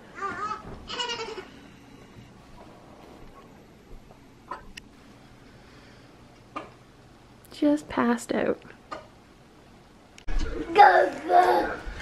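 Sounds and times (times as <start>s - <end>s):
baby crying: 0.2s - 1.5s.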